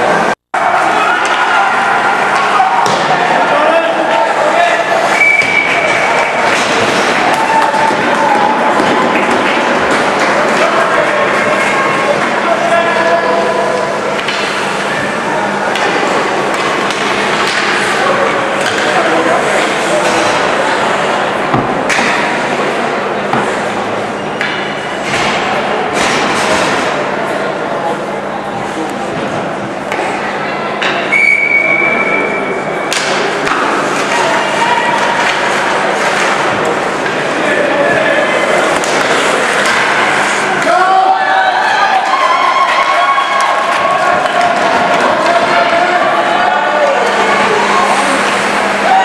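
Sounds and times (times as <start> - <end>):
spectators chattering: 0.0 - 49.0
steady low arena hum: 0.0 - 49.0
hockey sticks knocking puck: 15.7 - 17.9, 18.6 - 20.5, 32.9 - 34.2, 38.6 - 40.7.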